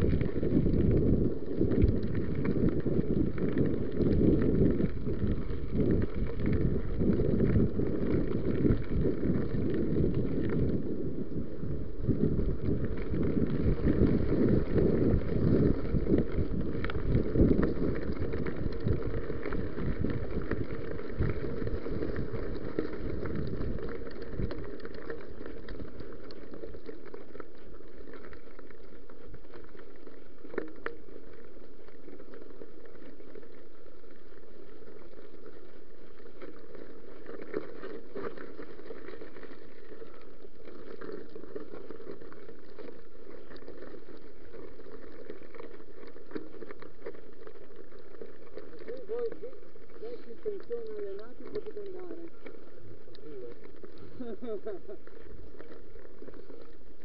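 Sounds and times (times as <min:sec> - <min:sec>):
bike tyres rumbling on gravel: 0:00.0 - 0:57.0.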